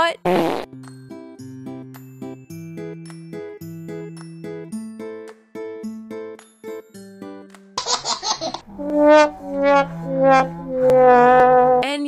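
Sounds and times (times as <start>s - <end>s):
fart-like noise: 0.3s - 0.7s, 8.6s - 11.9s
plucked guitar background music: 0.6s - 7.7s, 8.6s - 12.0s.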